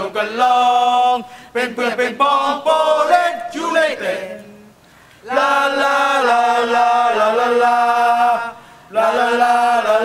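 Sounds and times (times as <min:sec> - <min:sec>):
voices singing held notes: 0:00.0 - 0:10.0.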